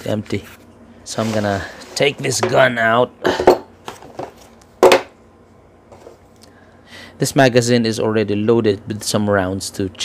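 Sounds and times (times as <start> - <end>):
hard object knocking on wooden table: 3.4 - 5.1.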